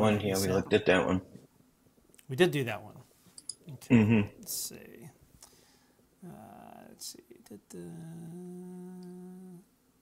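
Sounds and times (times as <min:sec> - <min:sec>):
man humming a held note: 0:07.4 - 0:09.7.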